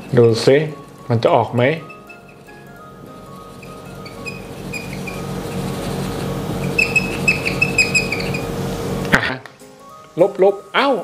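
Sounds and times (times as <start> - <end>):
background music: 0.0 - 6.8, 8.4 - 11.0
marker squeaking on whiteboard: 1.7 - 8.6.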